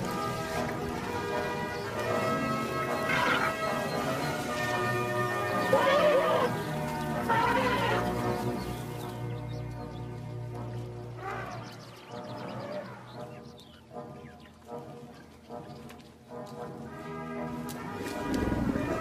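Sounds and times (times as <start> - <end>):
elephants trumpeting: 0.0 - 8.4, 17.8 - 19.0
background music: 0.0 - 19.0.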